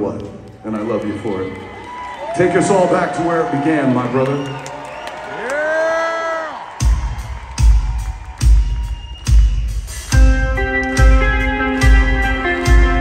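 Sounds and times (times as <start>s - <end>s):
metal band playing live: 10.0s - 13.0s.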